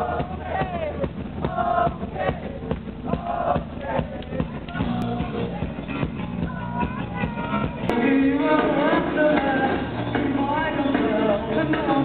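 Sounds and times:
loud live band: 0:00.0 - 0:12.0
steady drum beat: 0:00.0 - 0:12.0.

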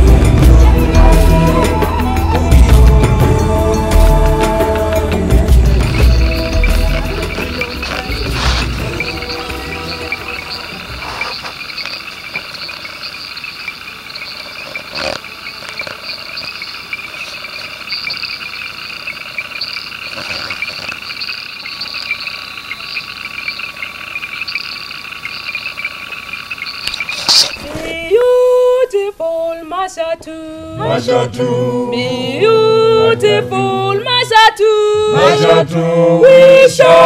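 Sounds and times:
music: 0:00.0 - 0:11.1
insects trilling: 0:00.0 - 0:30.2
frogs chorus: 0:03.2 - 0:28.1.

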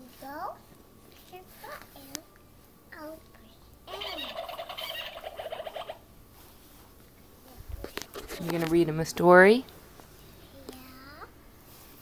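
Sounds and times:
rapid warbling animal call: 0:03.9 - 0:06.1.

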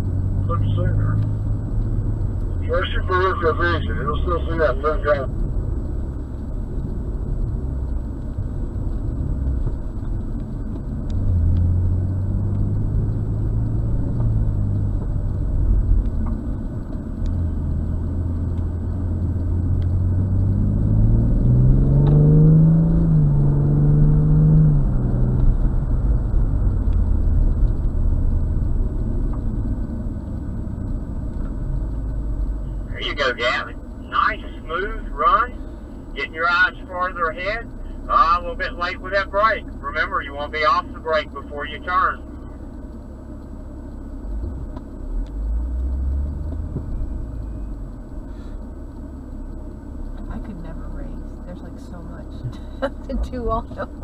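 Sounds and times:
car engine revving: 0:00.0 - 0:54.0
road rumble: 0:00.0 - 0:54.0.

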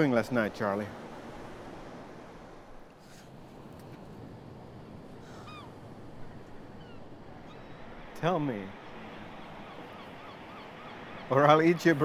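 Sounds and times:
ocean surf: 0:00.0 - 0:12.0
wind: 0:00.0 - 0:12.0
faint bird calls: 0:05.1 - 0:12.0.

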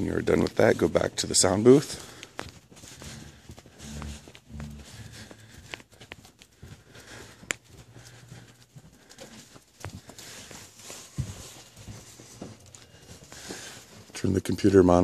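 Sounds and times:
faint rustling: 0:00.0 - 0:15.0
footsteps walking: 0:00.0 - 0:15.0.

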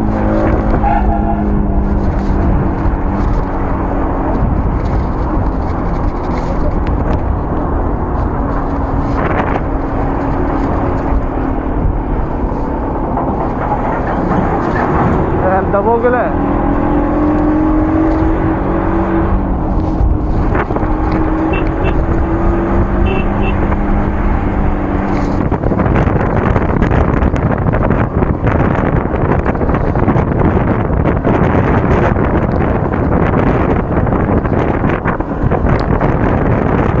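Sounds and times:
motorcycle road noise: 0:00.0 - 0:37.0
wind rushing over microphone: 0:00.0 - 0:37.0.

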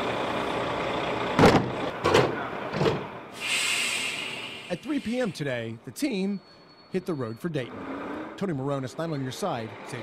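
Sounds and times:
bus engine running: 0:00.0 - 0:05.4.

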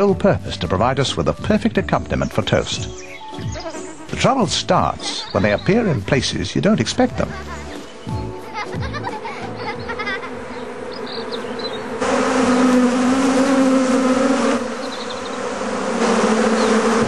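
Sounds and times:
honeybees buzzing: 0:00.0 - 0:17.0.

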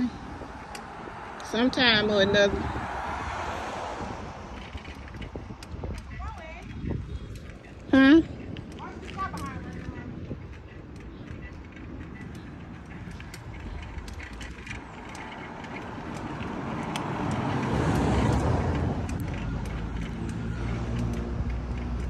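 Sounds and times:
car engine humming: 0:00.0 - 0:22.0
car passing: 0:00.0 - 0:22.0.

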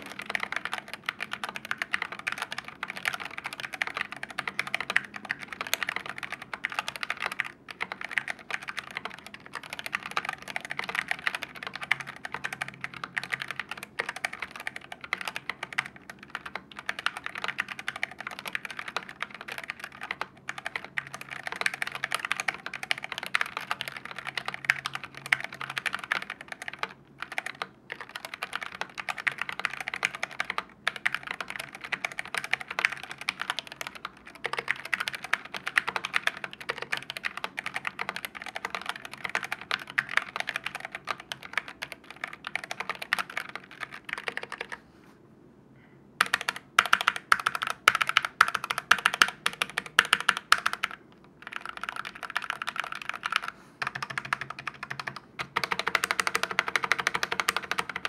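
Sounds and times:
mechanical keyboard typing: 0:00.0 - 0:44.8, 0:46.2 - 0:58.0.

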